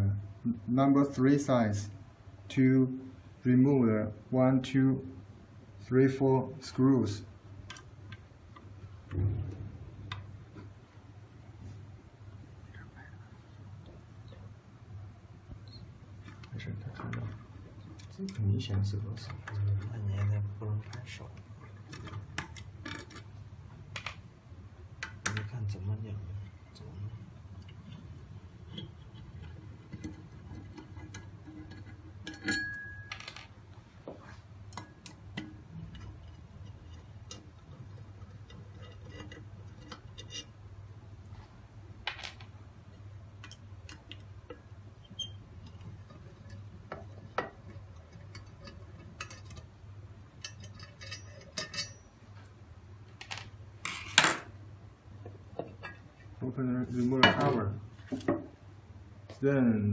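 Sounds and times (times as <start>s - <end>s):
low steady hum: 0.0s - 59.9s
metal cover clattering: 28.7s - 33.4s.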